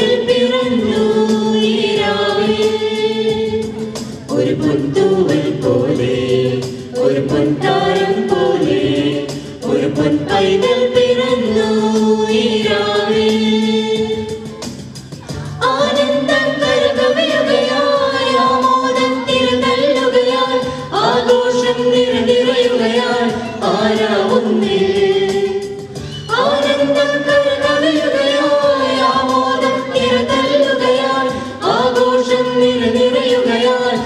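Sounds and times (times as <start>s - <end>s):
choir singing a carol: 0.0s - 14.6s, 15.5s - 34.0s.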